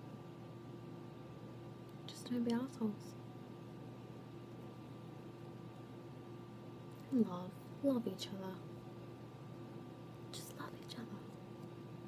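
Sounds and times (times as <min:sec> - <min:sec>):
faint steady hum: 0:00.0 - 0:12.0
woman whispering softly: 0:10.3 - 0:11.4.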